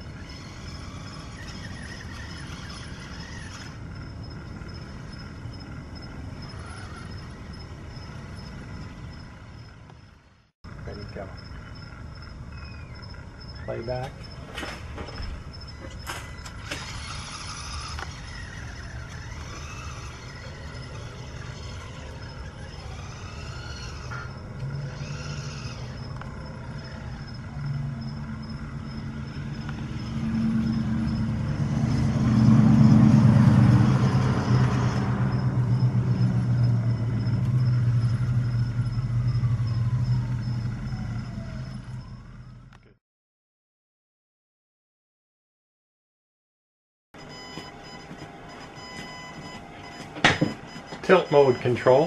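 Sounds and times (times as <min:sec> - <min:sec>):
model motor humming: 0:00.0 - 0:10.0, 0:15.2 - 0:42.4.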